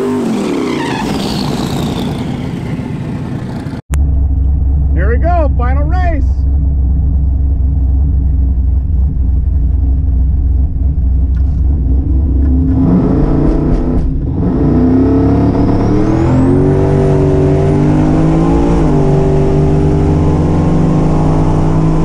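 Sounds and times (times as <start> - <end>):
car engine revving: 1.2 - 22.0
car engine idling: 1.6 - 14.3.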